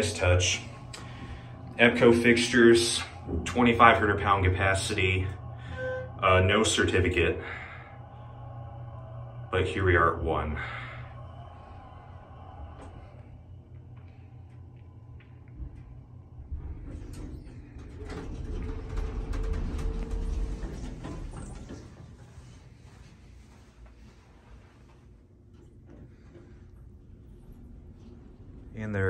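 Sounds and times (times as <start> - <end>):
elevator doors sliding open: 0.0 - 13.3, 15.7 - 22.7
door mechanism humming: 0.0 - 22.3.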